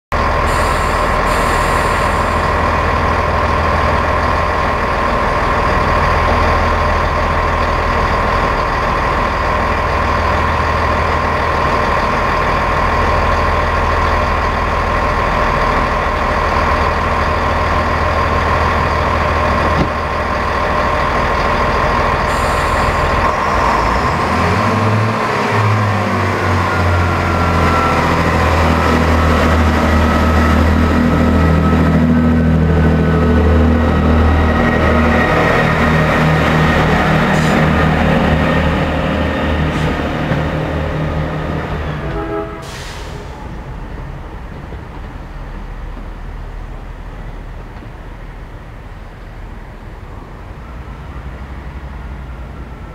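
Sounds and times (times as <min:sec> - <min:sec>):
diesel train engine: 0:00.1 - 0:52.9.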